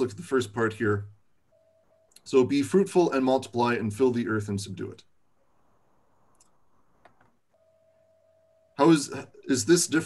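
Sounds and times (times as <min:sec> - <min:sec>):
faint steady tone: 0:00.0 - 0:10.0
faint clicks: 0:06.3 - 0:07.4.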